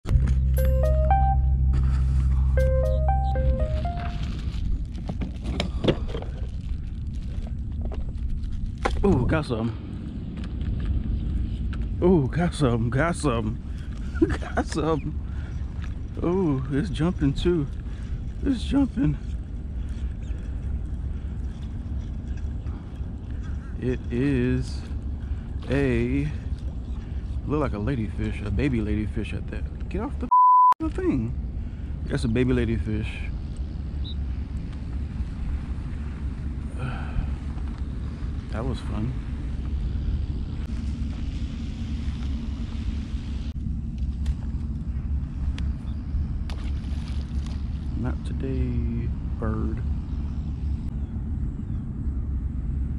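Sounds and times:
wind rumble on microphone: 4.2 - 30.1, 31.0 - 52.9.

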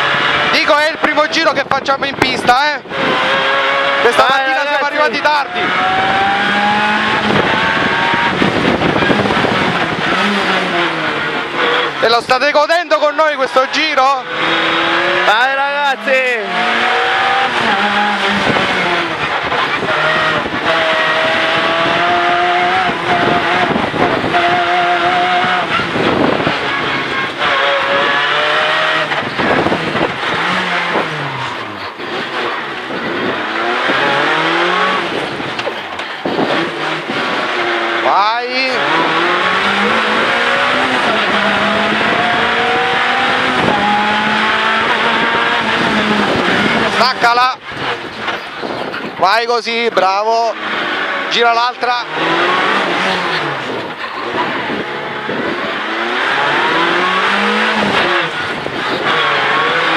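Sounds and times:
car engine revving through gears: 0.0 - 59.9.

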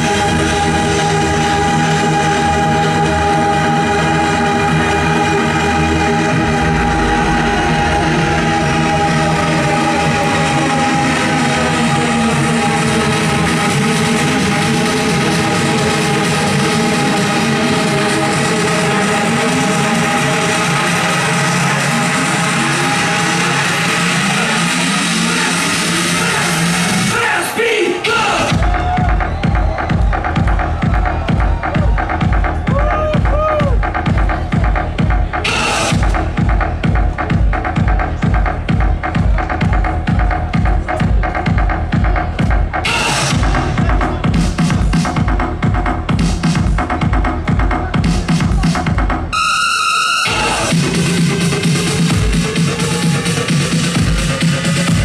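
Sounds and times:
electronic dance music: 0.0 - 55.0
synth sweep: 5.3 - 10.0
heavy kick drum: 28.5 - 49.3.

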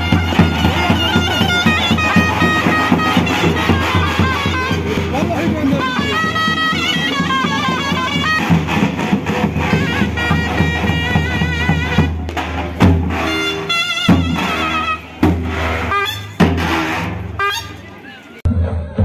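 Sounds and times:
bass drums beating: 0.0 - 17.4
reed wind instrument melody: 0.0 - 18.4.

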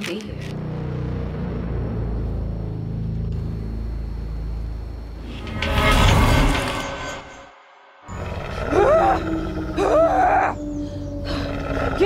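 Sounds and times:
low music drone: 0.4 - 12.0
wolves snarling and growling: 8.1 - 10.6, 11.2 - 12.0.

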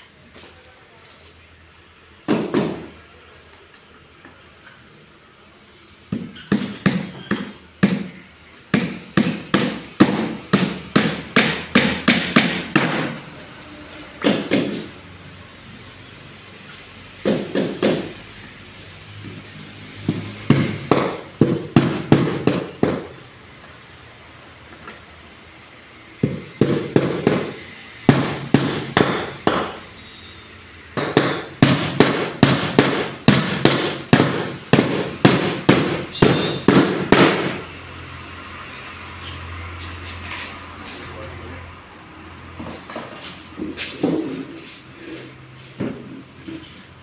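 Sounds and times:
hammer striking wood: 2.3 - 2.9, 6.1 - 13.2, 14.2 - 14.9, 17.2 - 18.1, 20.0 - 23.1, 26.2 - 29.8, 31.0 - 37.6.

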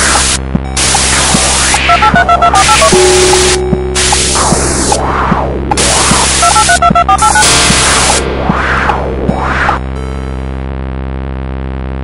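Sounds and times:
loud static hiss: 0.0 - 12.0
touch-tone keypad beeps: 1.7 - 4.7, 6.4 - 7.4.

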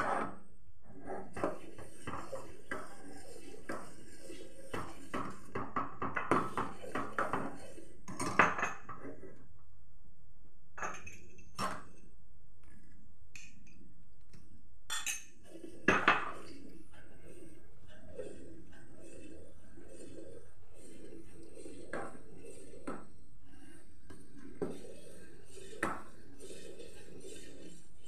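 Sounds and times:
ladle scraping steel pan: 15.5 - 28.0.

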